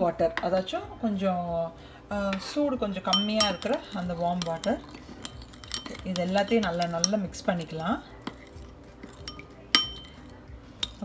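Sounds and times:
spoon clinking on bowl: 3.1 - 11.0
spoon stirring water in bowl: 3.1 - 11.0.

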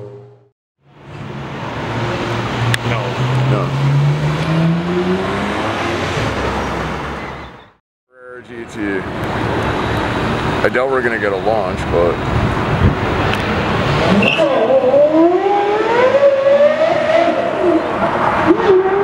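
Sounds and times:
street traffic noise: 0.0 - 19.0
car engine revving up: 1.0 - 7.2, 11.8 - 19.0.

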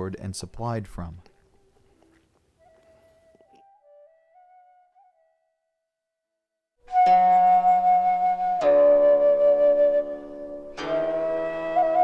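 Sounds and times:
soft held melody: 1.0 - 5.6, 6.8 - 12.0.

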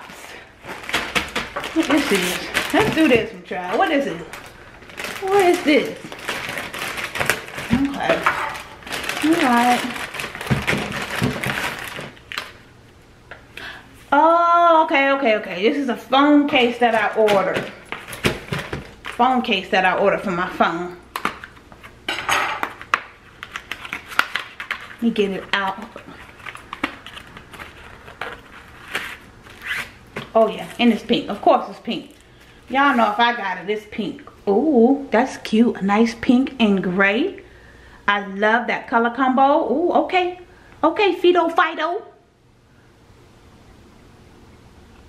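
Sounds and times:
plastic mailer bag crinkling: 0.0 - 12.7, 16.5 - 20.3, 22.7 - 33.6.

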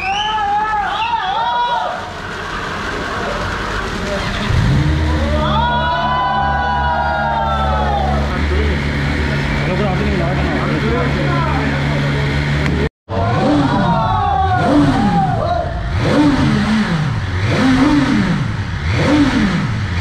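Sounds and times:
motorcycle engine starting and idling: 1.9 - 5.9, 7.6 - 20.0.

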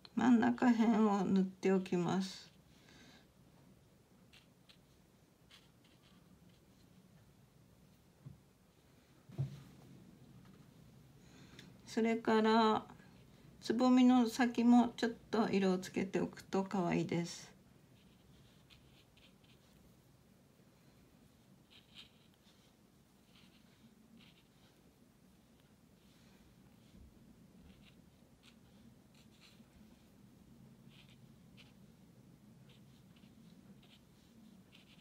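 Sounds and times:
paintbrush scratching on paper: 4.3 - 7.0, 17.9 - 19.9, 21.2 - 35.0.

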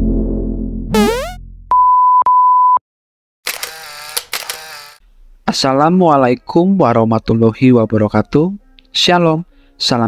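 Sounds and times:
buzzy electronic effect: 0.9 - 1.4
high beep tone: 1.0 - 2.8.

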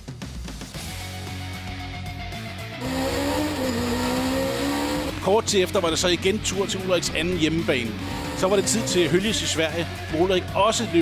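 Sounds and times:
background music: 0.0 - 11.0
racing car engines: 2.8 - 10.3.

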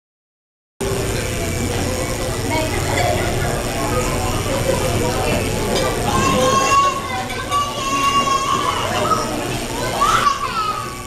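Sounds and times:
children chattering: 0.8 - 11.0
high child's voice: 6.0 - 11.0.

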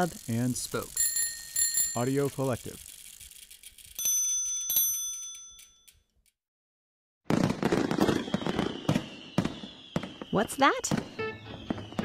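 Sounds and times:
fireworks fuse fizzing and crackling: 0.0 - 4.0, 7.3 - 12.0
bell-like chime: 4.0 - 5.9
faint falling whistle: 8.0 - 12.0.

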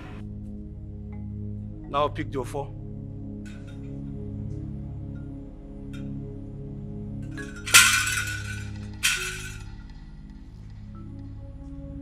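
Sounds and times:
low film score drone: 0.0 - 7.7, 9.6 - 12.0
bright clinking crashes: 7.4 - 9.9.

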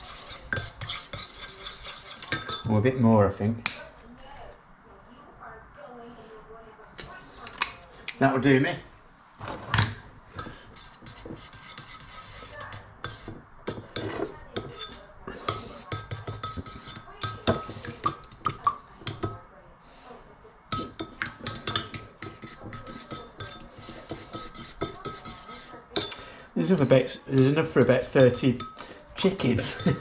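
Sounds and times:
metal spoon clinking and scraping bowl: 0.0 - 2.9, 10.3 - 19.4, 20.7 - 30.0.

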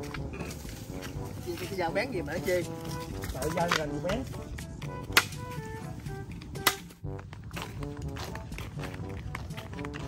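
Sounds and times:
background music: 0.0 - 10.0
machete chopping bamboo: 5.1 - 5.4, 6.6 - 7.0.

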